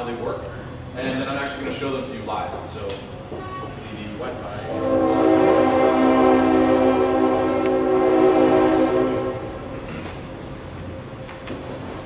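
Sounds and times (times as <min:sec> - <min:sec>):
rumble of rail traffic: 0:00.0 - 0:12.0
train horn chord: 0:04.4 - 0:10.2.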